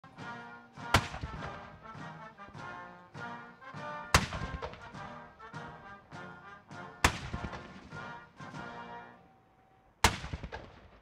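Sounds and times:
military band music: 0.0s - 10.0s
cannon shots echoing: 0.8s - 2.0s, 4.1s - 5.2s, 7.0s - 8.8s, 10.0s - 11.0s.

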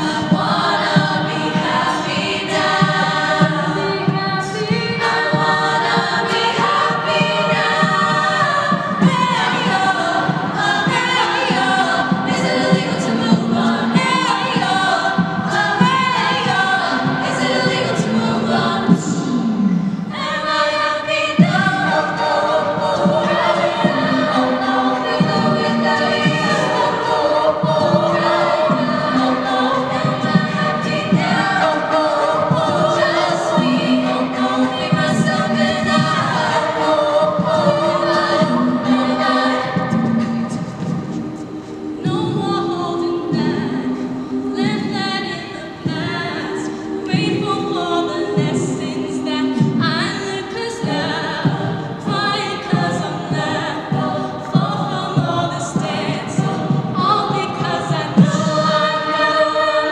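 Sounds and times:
vocal percussion beat: 0.0s - 59.9s
women singing in close harmony: 0.0s - 59.9s.

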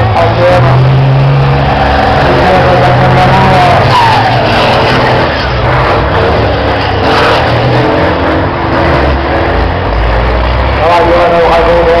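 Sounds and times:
diesel truck engines running hard: 0.0s - 12.0s.

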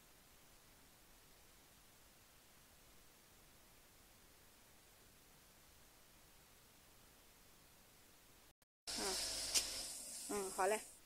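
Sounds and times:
steady high-pitched hiss: 0.0s - 11.0s.

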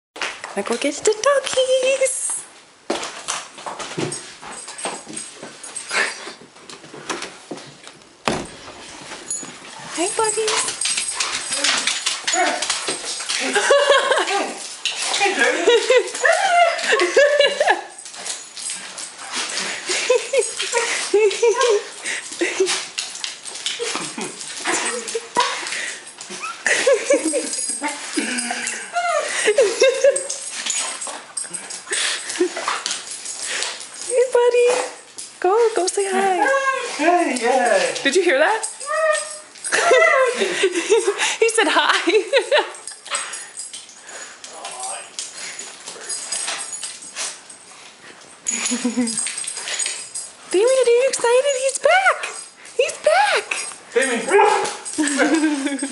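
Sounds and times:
dogs breathing noisily: 4.2s - 6.5s, 8.7s - 13.8s, 17.9s - 37.2s, 40.4s - 41.4s, 42.7s - 51.2s
dogs whining and yipping: 15.9s - 34.0s, 38.7s - 40.3s, 48.5s - 50.3s.

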